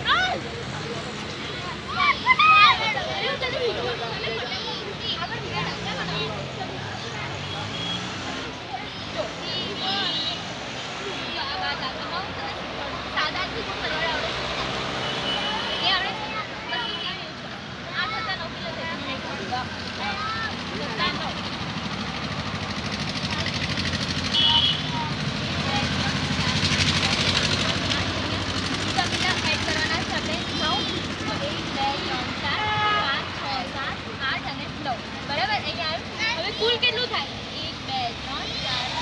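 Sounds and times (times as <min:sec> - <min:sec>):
indistinct nearby voices: 0:00.0 - 0:39.0
motor vehicle passing: 0:00.0 - 0:39.0.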